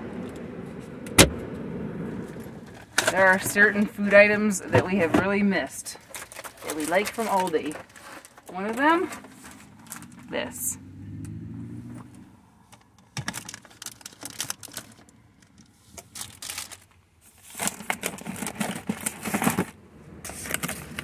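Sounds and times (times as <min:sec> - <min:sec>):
boxes scraping and rustling: 0:02.4 - 0:10.5, 0:15.7 - 0:21.0.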